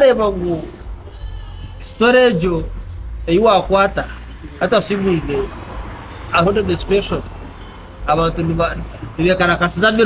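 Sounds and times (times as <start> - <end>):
man speaking: 0.0 - 0.8, 1.8 - 5.6, 6.3 - 7.3, 8.0 - 10.0.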